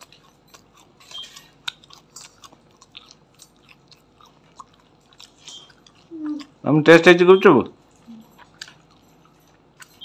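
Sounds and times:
chewing crisp food: 0.0s - 10.0s.

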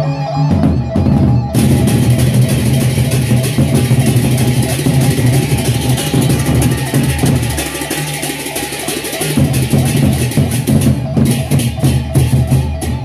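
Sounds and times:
barrel drums beaten: 0.6s - 13.0s
cymbals clashing: 1.6s - 13.0s.

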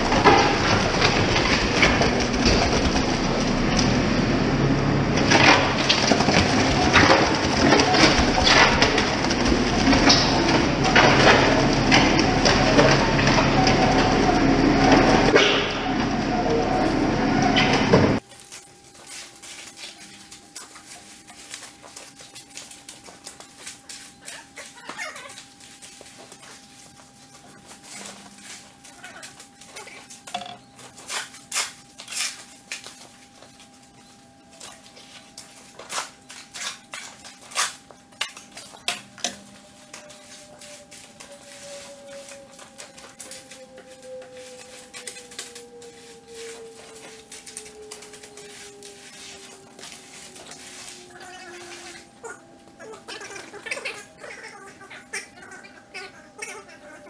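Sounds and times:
wet concrete pouring: 0.0s - 30.2s
engine running: 0.0s - 57.0s
shovel and rake scraping concrete: 5.3s - 33.7s, 34.5s - 57.0s.

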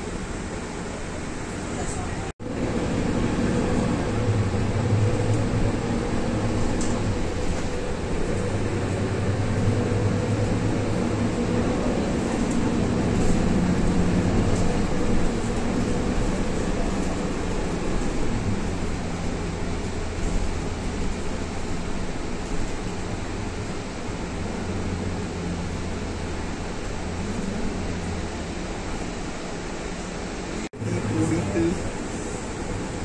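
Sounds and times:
bus engine drone: 0.0s - 33.0s
road rumble: 0.0s - 33.0s.

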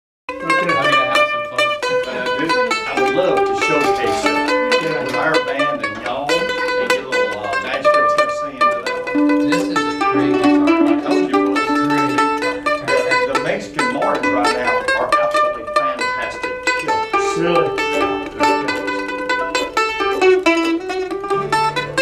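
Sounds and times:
acoustic string instruments: 0.3s - 22.0s
mandolin picking melody: 0.3s - 22.0s.

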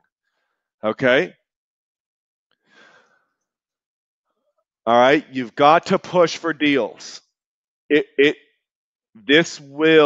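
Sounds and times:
faint breath: 2.6s - 3.4s.

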